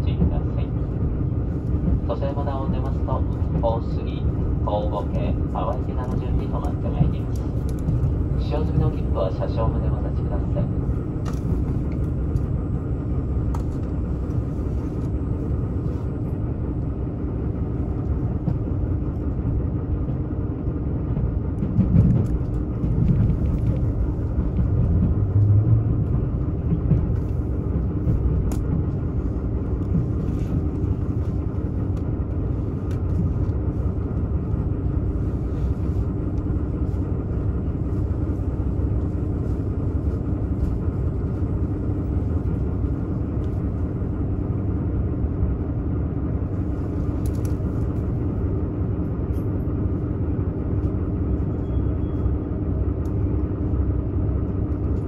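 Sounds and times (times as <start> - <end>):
diesel engine drone: 0.0 - 55.0
wheels rumbling on rail: 0.0 - 55.0.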